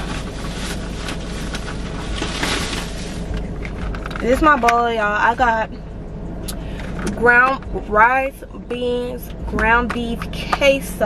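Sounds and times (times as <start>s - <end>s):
takeout bag rustling and crinkling: 0.0s - 4.2s
low car cabin hum: 0.0s - 11.0s.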